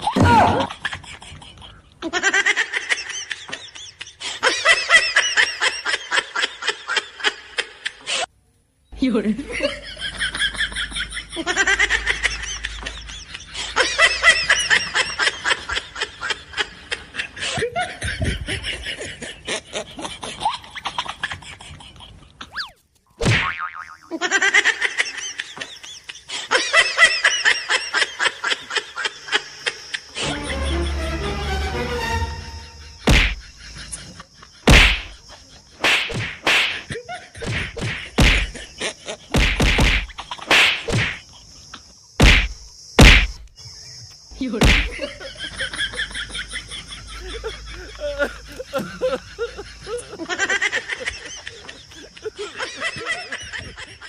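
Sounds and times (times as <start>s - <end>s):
loud punch whacks: 23.2s - 23.5s, 33.1s - 33.5s, 34.7s - 35.2s, 35.8s - 36.8s, 37.4s - 38.6s, 39.3s - 41.2s, 42.2s - 43.4s, 44.6s - 45.0s
quick falling swoop: 33.0s - 33.5s, 35.8s - 36.8s.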